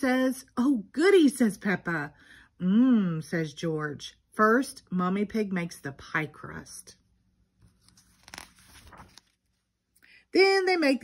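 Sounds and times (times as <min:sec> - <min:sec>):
paper page turning: 0:07.6 - 0:09.7.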